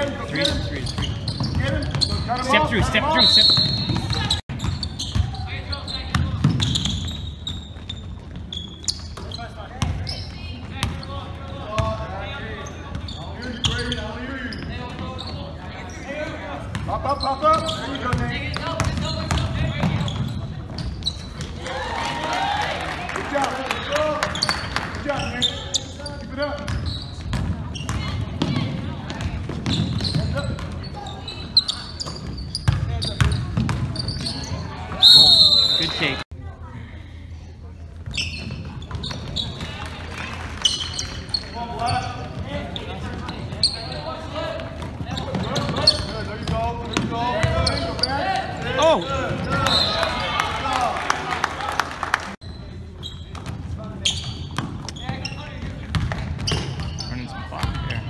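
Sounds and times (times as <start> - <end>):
voices of players and spectators: 0.0 - 58.0.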